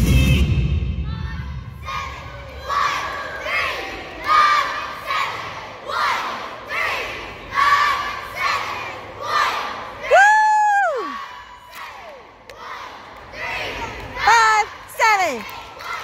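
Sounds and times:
cheerleaders shouting together: 1.1 - 16.0.

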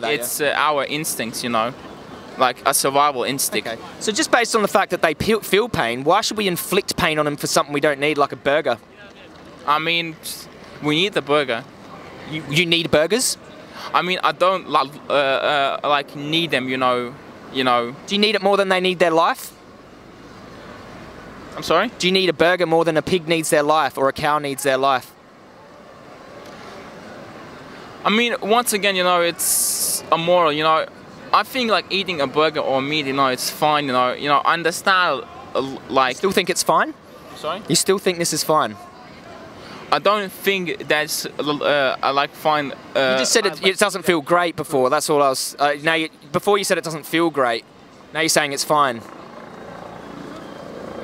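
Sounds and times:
distant traffic hum: 0.0 - 51.0
passers-by: 0.0 - 51.0
distant engine drone: 46.9 - 51.0.

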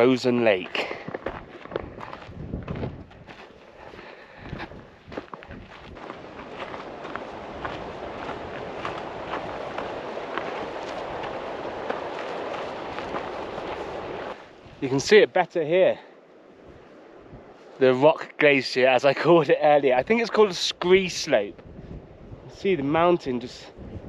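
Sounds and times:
footsteps on gravel trail: 0.0 - 14.5
steady rushing noise: 4.5 - 15.8.

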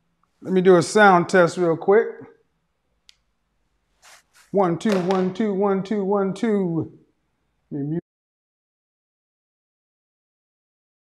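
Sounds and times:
man's voice: 0.4 - 2.3, 4.6 - 6.9.

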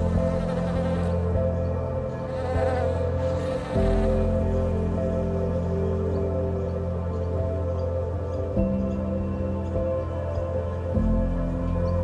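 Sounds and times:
honeybees buzzing: 0.0 - 4.7
soft music of held chords: 0.0 - 12.0.

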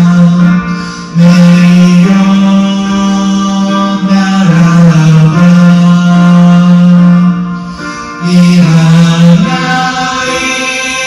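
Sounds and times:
karaoke backing track: 0.0 - 11.0
man singing into a microphone: 0.0 - 11.0.

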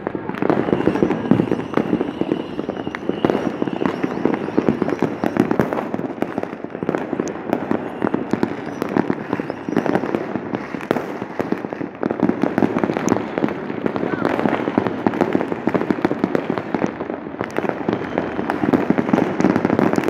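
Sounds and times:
fireworks and firecrackers banging: 0.0 - 20.0.

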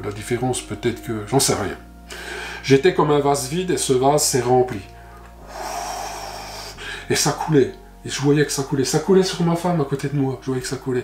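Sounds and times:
man blowing breathy air: 2.1 - 2.6, 5.0 - 7.1.

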